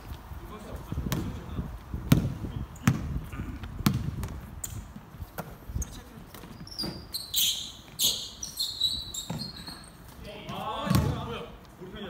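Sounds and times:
basketball bouncing on wooden floor: 2.1s - 3.2s, 3.8s - 4.4s, 9.2s - 9.5s, 10.5s - 11.2s.

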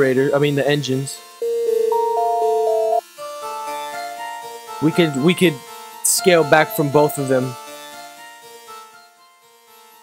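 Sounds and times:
low pulsing synth line: 1.4s - 3.0s
synthesizer held tones: 1.4s - 3.0s.

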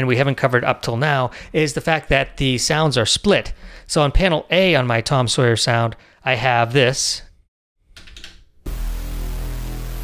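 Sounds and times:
low synth bass note: 8.7s - 10.0s.

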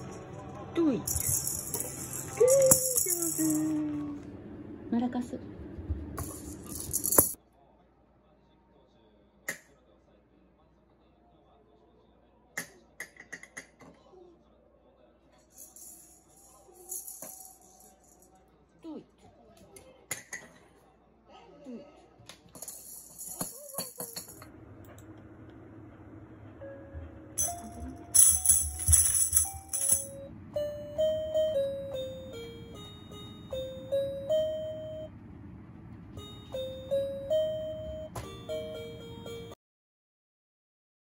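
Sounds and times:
high jingling shimmer: 1.1s - 3.8s, 27.4s - 30.3s
sustained tune: 26.4s - 39.6s
electronic keyboard melody: 29.4s - 35.2s, 36.1s - 39.6s.

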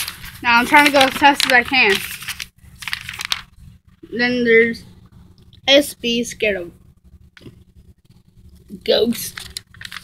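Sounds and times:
paper rustling and crinkling: 0.0s - 3.6s, 9.0s - 10.0s.

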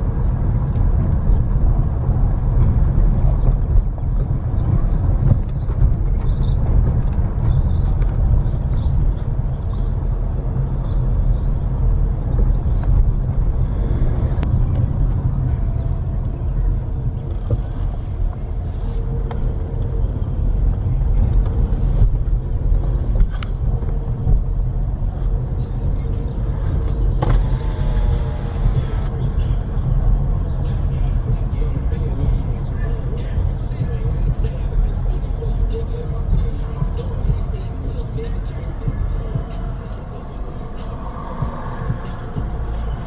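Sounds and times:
car engine and tyre rumble: 0.0s - 43.0s.

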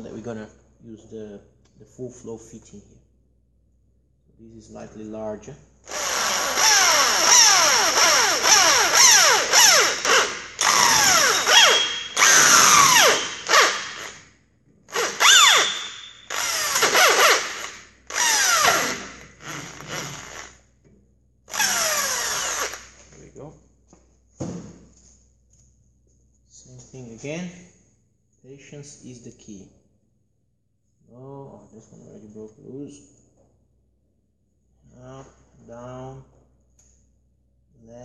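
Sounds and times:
electric drill boring into steel: 5.9s - 14.2s, 14.9s - 20.6s, 21.5s - 22.9s.

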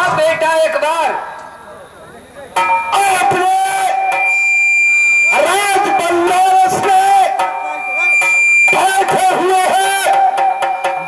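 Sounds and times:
steady drone tones: 0.0s - 11.0s.

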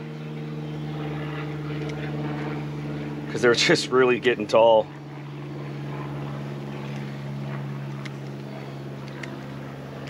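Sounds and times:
machine motor hum: 0.0s - 10.0s.

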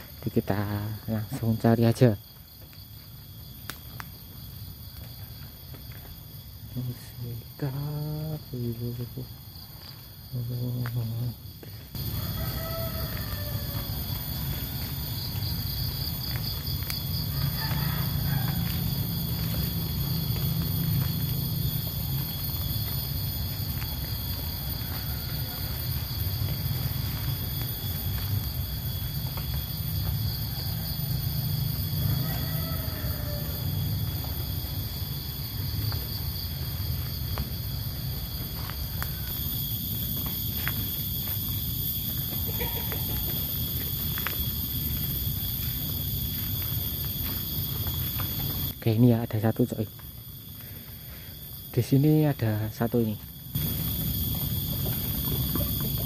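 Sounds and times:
high insect drone: 0.0s - 56.0s.

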